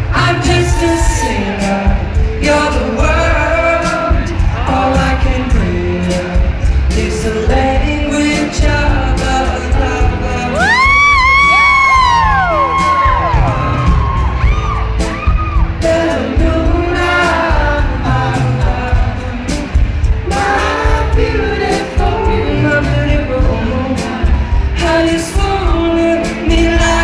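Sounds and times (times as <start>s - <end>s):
man singing: 0.0s - 13.8s, 15.6s - 27.0s
acoustic guitar: 0.0s - 27.0s
drums: 0.0s - 27.0s
upright bass: 0.0s - 27.0s
high whoops: 0.5s - 1.8s, 10.5s - 15.7s.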